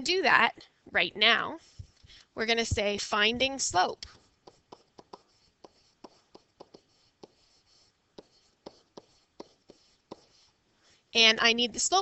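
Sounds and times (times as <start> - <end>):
stylus tapping and scratching: 1.6 - 10.6.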